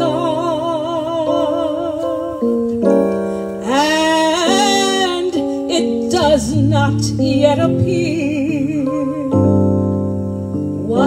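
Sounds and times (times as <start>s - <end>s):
woman singing gospel: 0.0s - 3.0s, 3.6s - 10.0s, 10.7s - 11.0s
sustained keyboard chords: 0.0s - 11.0s.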